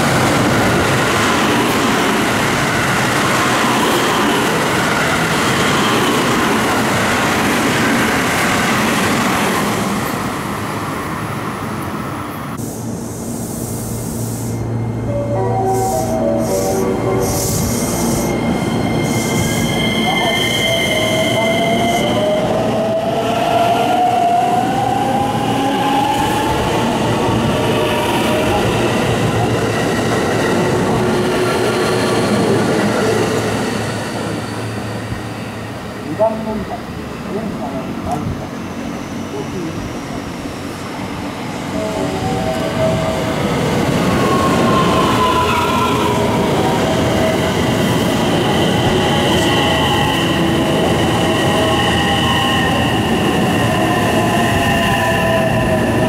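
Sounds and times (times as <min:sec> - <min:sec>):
train rushing past: 0:00.0 - 0:56.0.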